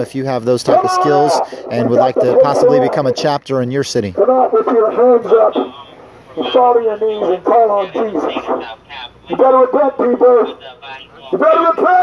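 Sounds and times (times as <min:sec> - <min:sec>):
man preaching through a megaphone: 0:00.0 - 0:12.0.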